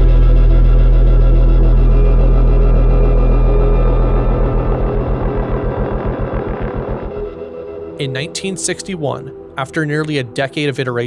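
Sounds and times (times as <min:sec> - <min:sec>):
deep cinematic bass hit: 0:00.0 - 0:08.0
soft ambient music tones: 0:00.0 - 0:11.0.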